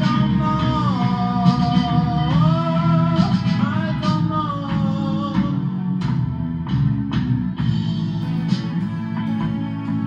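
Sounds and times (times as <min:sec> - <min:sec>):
electric guitar: 0:00.0 - 0:10.0
low accompaniment: 0:00.0 - 0:10.0.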